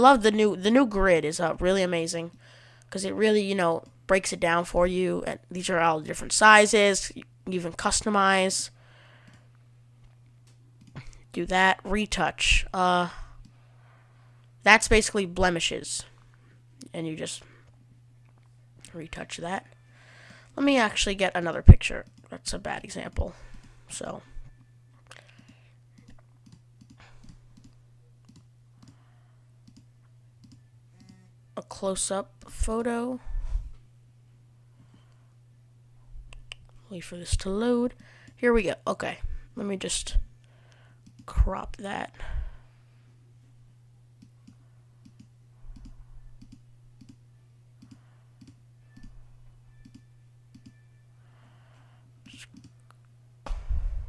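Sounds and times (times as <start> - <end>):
low hum: 0.0 - 54.0
computer mouse clicks: 25.1 - 29.0, 29.6 - 31.2, 41.0 - 41.4, 44.2 - 47.2, 47.8 - 49.2, 49.8 - 50.8, 52.2 - 53.0.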